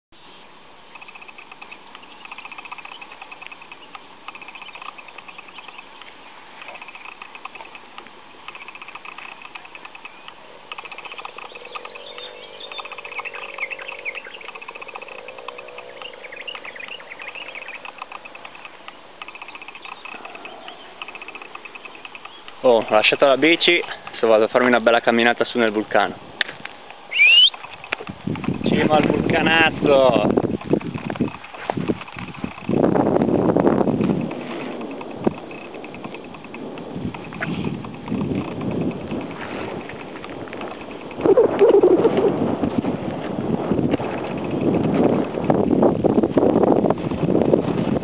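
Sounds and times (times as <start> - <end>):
lower wavering animal call: 10.4 - 18.7, 27.1 - 27.6, 41.1 - 42.4
short high animal trill: 27.1 - 27.6.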